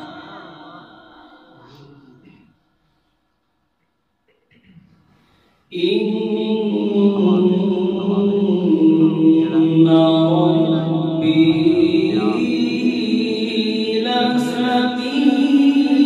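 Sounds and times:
man chanting through a microphone: 0:00.0 - 0:02.4, 0:05.7 - 0:16.0.

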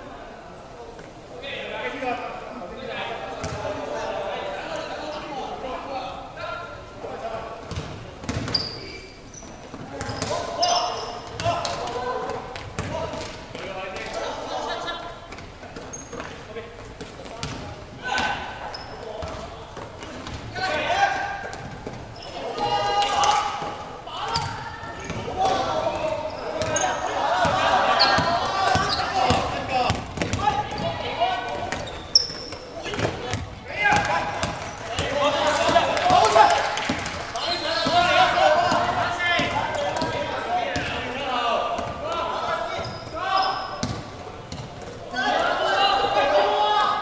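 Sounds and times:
players calling out: 0:17.4 - 0:47.0
basketball bouncing on hardwood: 0:43.8 - 0:44.7.

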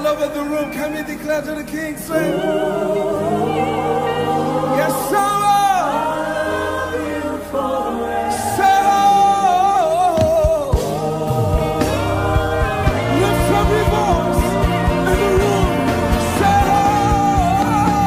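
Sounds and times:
held low chords: 0:10.6 - 0:18.0.

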